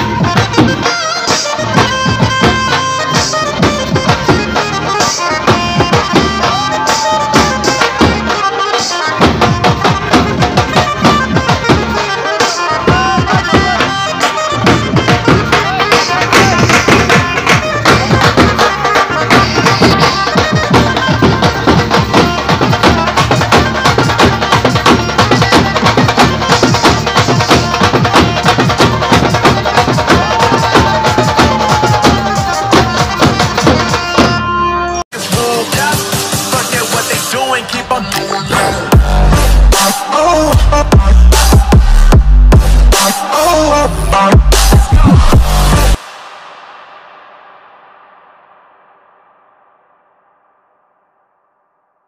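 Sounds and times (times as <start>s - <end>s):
lead melody line: 0.0s - 46.0s
drums beating fast rhythm: 0.0s - 49.0s.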